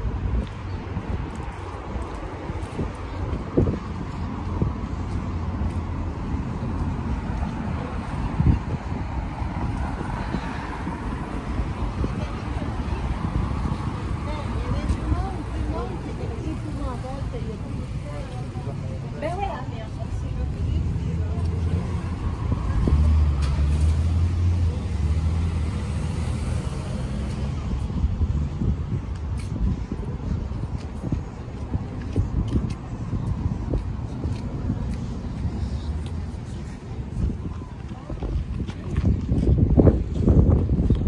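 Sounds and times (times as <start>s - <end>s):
passing cars rumble: 0.0s - 41.0s
vehicle engine rumble: 0.0s - 41.0s
people's voices: 1.2s - 41.0s.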